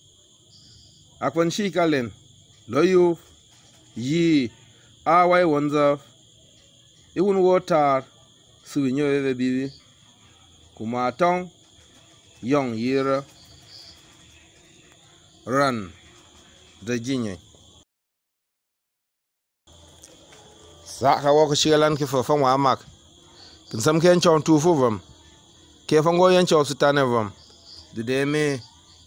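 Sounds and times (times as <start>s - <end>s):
insect trilling: 0.0s - 17.8s, 19.7s - 29.0s
man reading aloud: 1.2s - 3.3s, 3.9s - 6.2s, 7.2s - 9.8s, 10.6s - 11.6s, 12.2s - 17.5s, 20.8s - 25.1s, 25.8s - 28.7s
man speaking: 1.2s - 3.3s, 4.0s - 6.1s, 7.2s - 9.8s, 10.8s - 11.6s, 12.4s - 14.4s, 15.4s - 16.2s, 16.8s - 17.5s, 20.8s - 22.9s, 23.6s - 25.1s, 25.9s - 28.7s.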